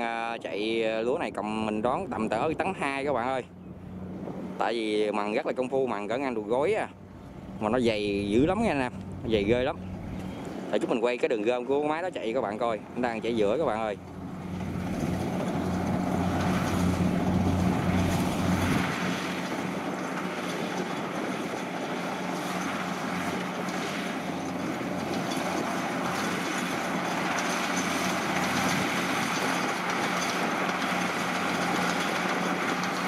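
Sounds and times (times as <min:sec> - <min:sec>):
cutting and threshing noise: 0:00.0 - 0:33.0
diesel engine droning: 0:00.0 - 0:33.0.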